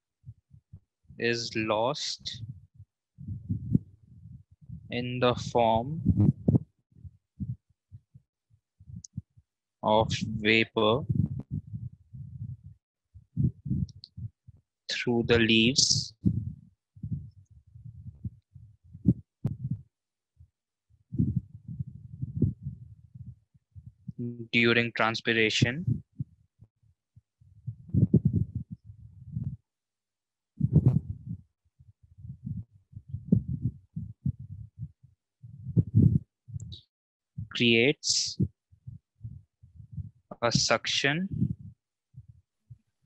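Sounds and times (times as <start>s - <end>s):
stylus bumping and scraping on tablet: 6.0s - 7.6s, 11.0s - 12.7s, 16.1s - 19.8s, 21.1s - 23.9s, 27.6s - 29.6s, 30.6s - 31.4s, 32.2s - 34.9s, 35.5s - 36.6s, 41.3s - 42.3s
stylus writing on a tablet: 27.7s - 29.6s, 32.4s - 34.6s.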